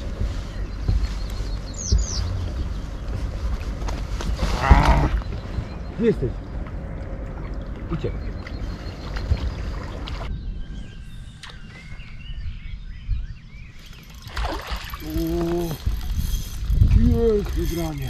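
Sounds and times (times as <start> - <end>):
river water lapping against boat: 0.0 - 10.3, 13.8 - 18.0
wind rumbling on microphone: 0.0 - 18.0.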